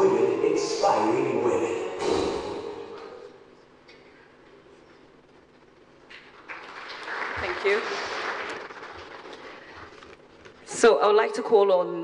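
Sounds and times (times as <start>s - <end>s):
audience applause: 6.2s - 9.8s.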